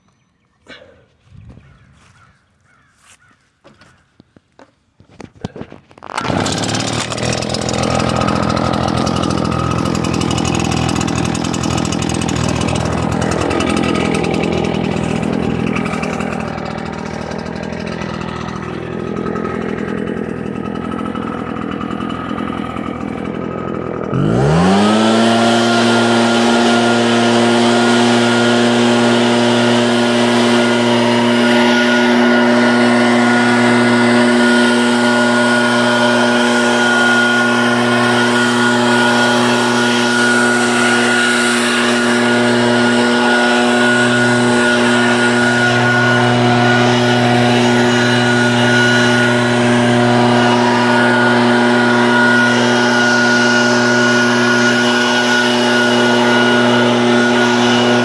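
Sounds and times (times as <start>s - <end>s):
leaf blower engine revving: 5.1s - 58.0s.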